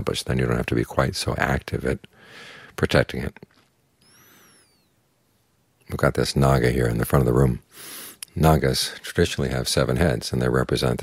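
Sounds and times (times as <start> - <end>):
breath-like hiss: 4.0 - 4.8, 7.7 - 8.2.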